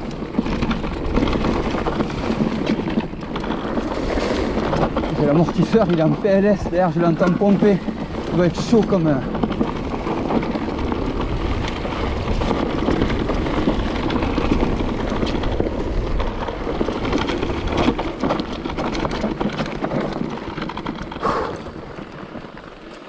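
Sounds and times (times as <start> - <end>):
wind buffeting microphone: 0.0 - 22.7
bike tyres rolling on dirt: 0.0 - 23.0
stones and bike rattling: 0.0 - 23.0.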